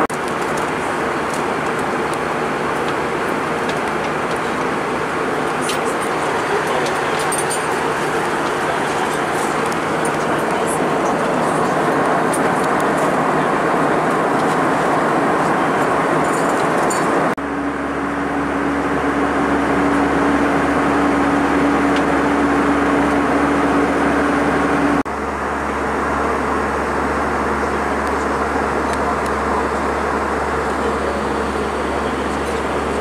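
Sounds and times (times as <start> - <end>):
airflow rushing in airplane cabin: 0.0 - 33.0
jet engines humming: 0.0 - 33.0
steady low hum: 0.0 - 33.0.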